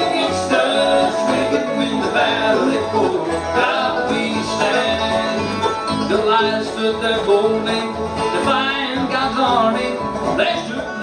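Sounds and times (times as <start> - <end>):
bluegrass band playing: 0.0 - 11.0.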